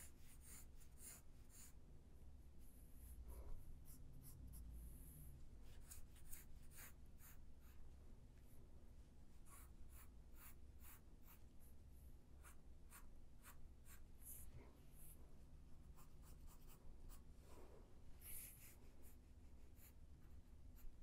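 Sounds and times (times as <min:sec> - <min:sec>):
pencil shading on paper: 0:00.0 - 0:01.8, 0:03.8 - 0:07.8, 0:09.4 - 0:11.7, 0:12.4 - 0:15.1, 0:15.9 - 0:17.2, 0:18.2 - 0:21.0
low steady hum: 0:00.0 - 0:21.0.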